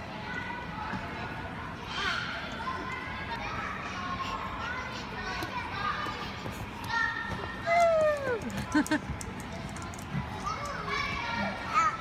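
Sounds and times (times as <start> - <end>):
children playing: 0.0 - 12.0.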